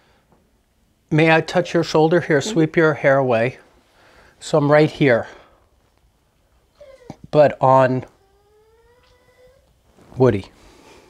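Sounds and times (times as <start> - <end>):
small dog whining: 2.4 - 2.7, 6.8 - 7.3, 8.1 - 9.8.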